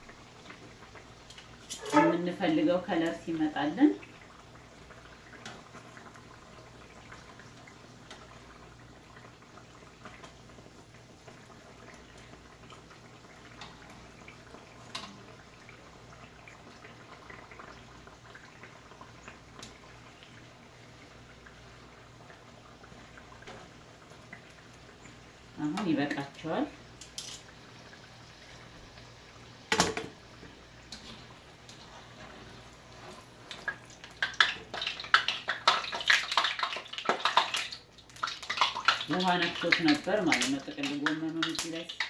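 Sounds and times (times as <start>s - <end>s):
pastries sizzling in hot oil: 0.0s - 42.0s
metal tongs clicking against pan: 27.0s - 27.4s.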